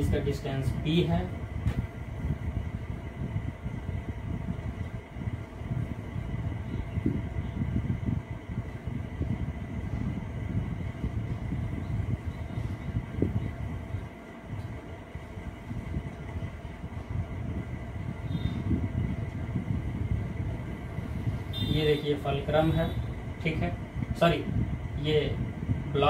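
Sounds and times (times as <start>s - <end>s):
faint high whine: 0.0s - 26.0s
low rumbling noise: 0.0s - 26.0s.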